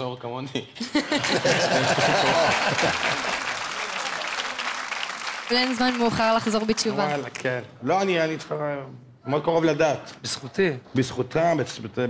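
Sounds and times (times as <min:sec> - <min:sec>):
audience laughing: 0:00.8 - 0:03.9
audience applauding: 0:01.0 - 0:07.5.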